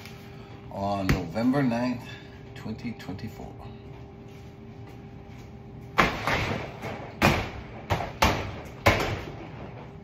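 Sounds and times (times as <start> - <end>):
gloved punches on heavy bag: 6.0 - 9.4.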